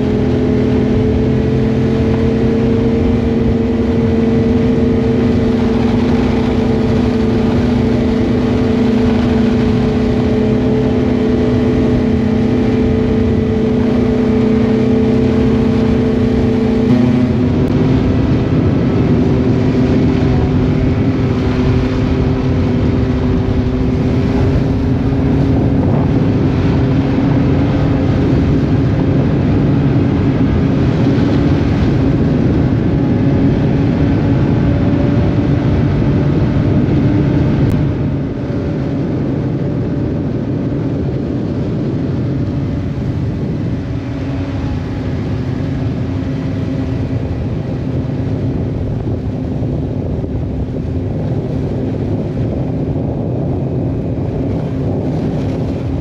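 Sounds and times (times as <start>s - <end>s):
snowmobile engine cruising: 0.0s - 56.0s.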